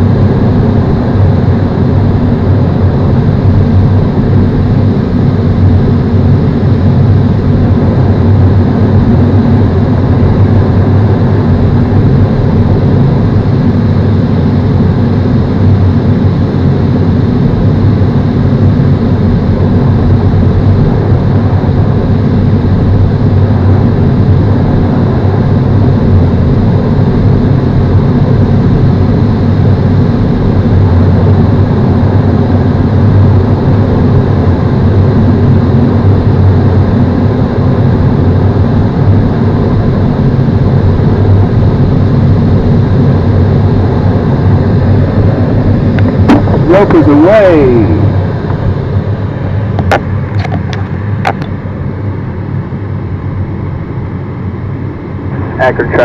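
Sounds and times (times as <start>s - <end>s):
airflow rushing around cockpit: 0.0s - 56.0s.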